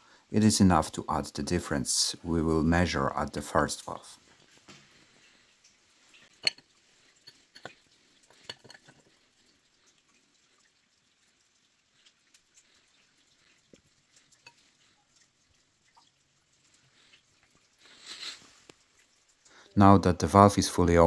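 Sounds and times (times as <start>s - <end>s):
metal tools clinking on engine parts: 6.4s - 7.8s, 8.4s - 9.1s
faint ticks: 18.6s - 19.7s.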